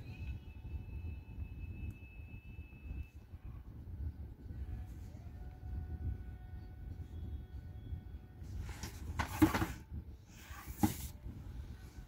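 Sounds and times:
faint background music: 0.0s - 12.0s
steady low rumble: 0.3s - 9.2s.

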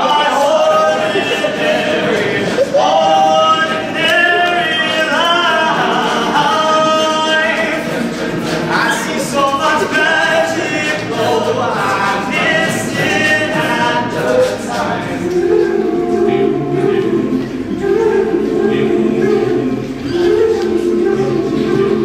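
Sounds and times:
lead male voice singing: 0.0s - 22.0s
male a cappella group singing: 0.0s - 22.0s.

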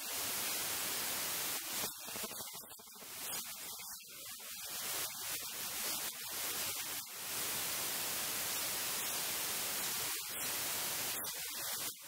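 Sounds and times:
static hiss: 0.0s - 12.0s.

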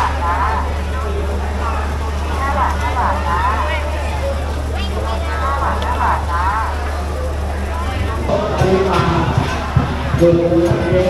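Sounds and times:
people talking in a crowd: 0.0s - 11.0s
steady low hum: 0.0s - 11.0s.

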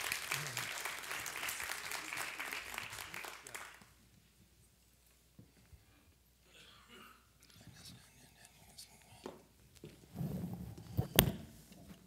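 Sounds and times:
faint whispering: 5.8s - 9.6s.

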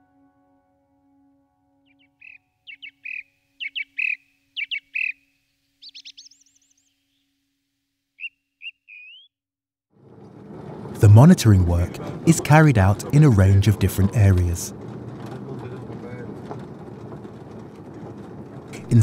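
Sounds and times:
soft music: 0.0s - 2.6s
songbird singing: 1.8s - 7.4s, 8.2s - 9.4s
car driving rumble: 10.0s - 19.0s.

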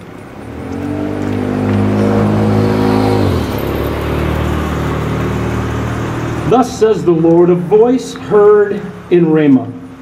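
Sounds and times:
motor vehicle passing: 0.0s - 8.2s.

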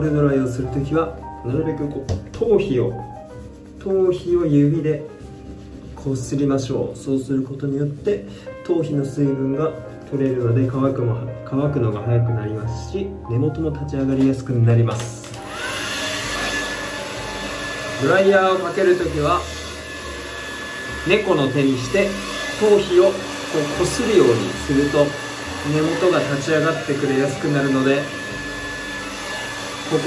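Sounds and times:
hair dryer running: 14.9s - 30.0s.

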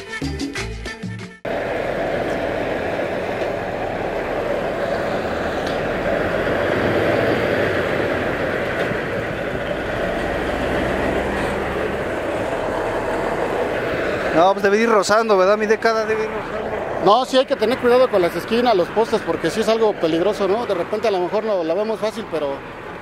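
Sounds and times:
diesel truck engine rumbling: 0.0s - 23.0s.

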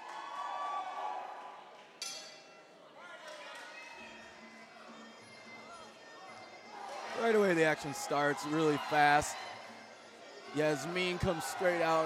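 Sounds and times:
crowd voices in a hall: 0.0s - 12.0s.

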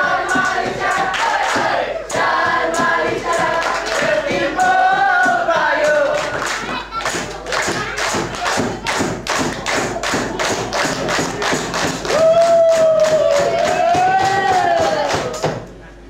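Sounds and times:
people clapping in rhythm: 0.0s - 15.7s.

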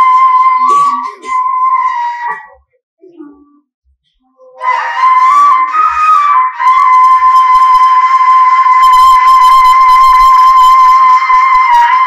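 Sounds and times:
pipe blown like a flute: 0.0s - 2.7s, 4.3s - 12.0s.

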